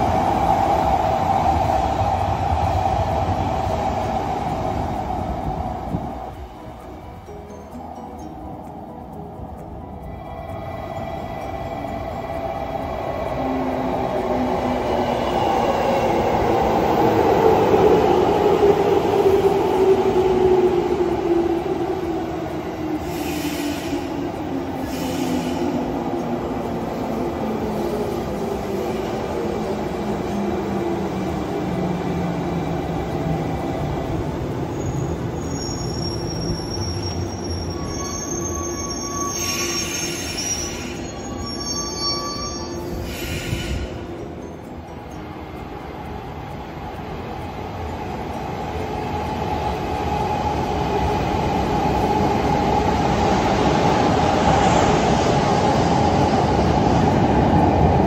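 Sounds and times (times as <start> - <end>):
train wheel and brake squeal: 23.0 - 26.3, 34.6 - 44.6.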